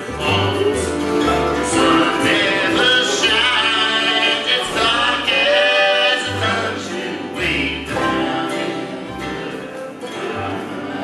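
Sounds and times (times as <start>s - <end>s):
acoustic bluegrass band playing: 0.0s - 11.0s
voices singing in harmony: 0.0s - 11.0s.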